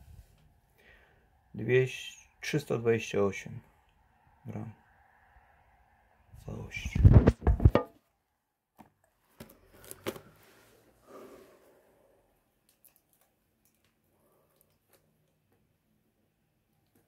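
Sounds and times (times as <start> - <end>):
knocks and clatter on tabletop: 7.2 - 8.0.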